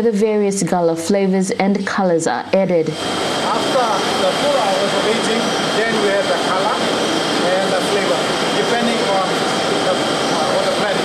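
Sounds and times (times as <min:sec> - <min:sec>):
factory machinery whining: 0:00.0 - 0:11.0
man talking: 0:03.4 - 0:11.0.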